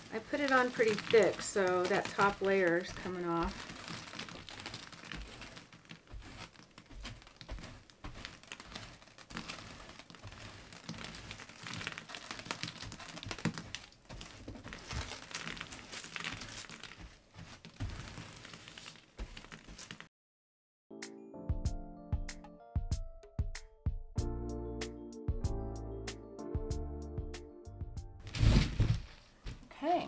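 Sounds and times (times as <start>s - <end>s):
brush sweeping crushed glass: 0.0s - 20.0s.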